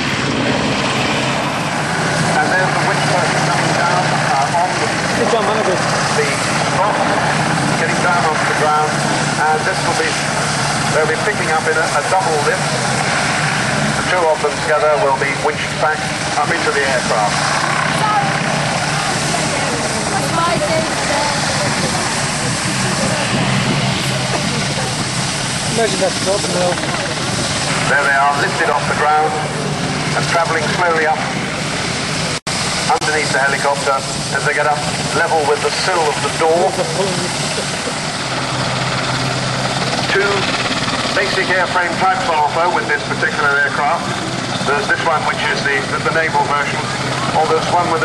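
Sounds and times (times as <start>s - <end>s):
helicopter hovering: 0.0s - 48.0s.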